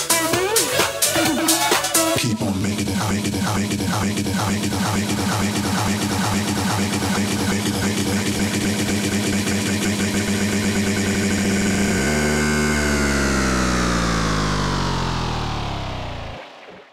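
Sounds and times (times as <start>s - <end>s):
tech house dance music: 0.0s - 16.9s
sound sliding down in pitch: 9.3s - 16.9s.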